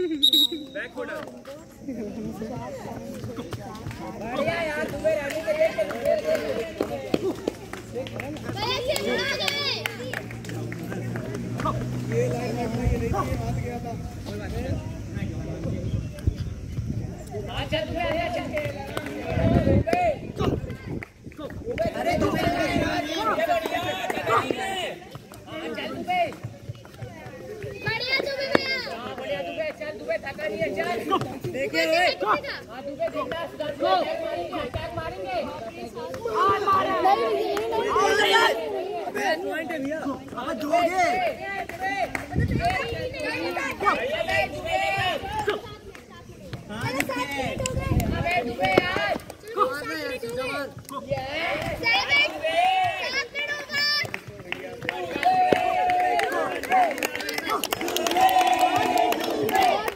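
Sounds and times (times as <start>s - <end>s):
young men shouting: 21.8s - 26.3s, 27.7s - 42.1s, 42.8s - 45.8s, 46.7s - 54.0s, 54.6s - 59.9s.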